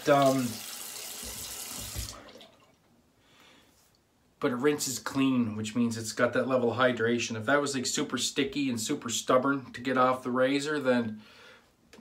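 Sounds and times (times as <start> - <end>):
tap water running: 0.0 - 2.8.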